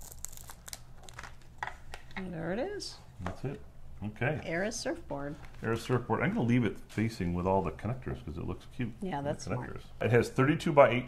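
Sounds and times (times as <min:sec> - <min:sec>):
crinkling plastic and paper: 0:00.0 - 0:02.2.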